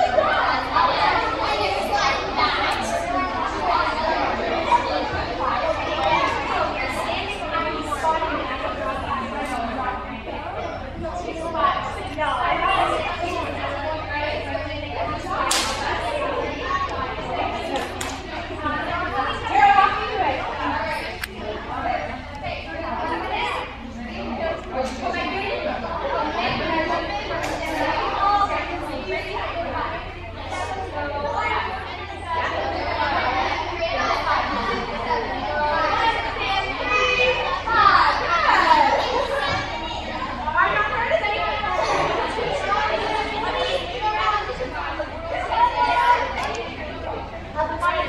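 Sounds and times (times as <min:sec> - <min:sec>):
crowd chatter: 0:00.0 - 0:48.0.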